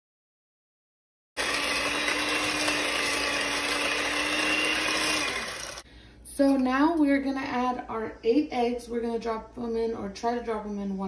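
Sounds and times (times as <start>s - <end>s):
electric hand mixer whirring: 1.4s - 5.9s.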